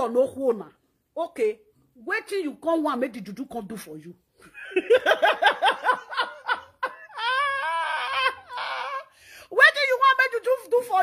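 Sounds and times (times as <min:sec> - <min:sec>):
woman laughing: 0:04.4 - 0:09.2
long drawn-out vocal cry: 0:07.0 - 0:09.2.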